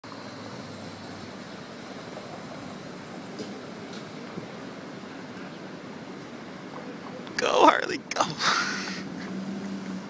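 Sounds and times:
street traffic hum: 0:00.0 - 0:10.0.

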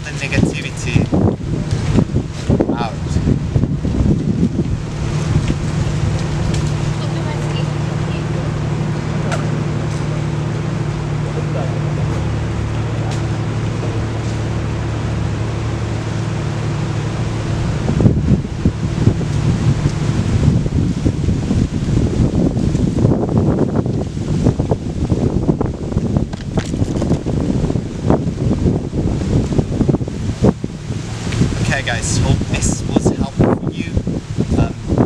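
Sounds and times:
low mechanical hum: 0:00.0 - 0:35.0
wind buffeting microphone: 0:00.0 - 0:35.0.

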